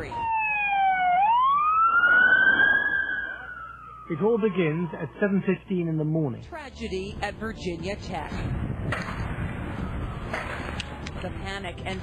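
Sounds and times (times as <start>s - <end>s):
emergency siren wailing: 0.0s - 6.0s, 9.3s - 11.1s.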